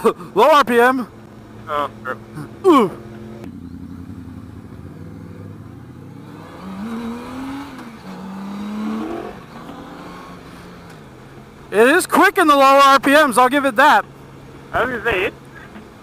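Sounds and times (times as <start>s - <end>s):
motorcycle engine accelerating: 1.6s - 11.0s.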